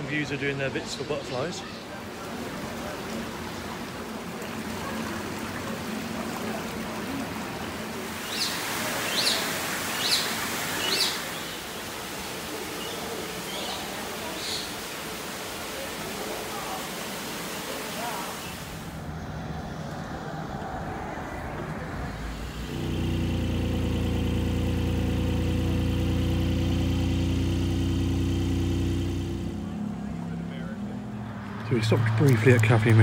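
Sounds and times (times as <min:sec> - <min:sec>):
car engine running: 0:21.3 - 0:33.0.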